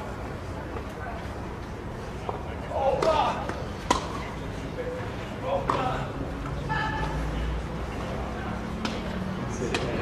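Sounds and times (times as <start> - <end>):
tennis racket hitting ball: 3.0 - 4.2.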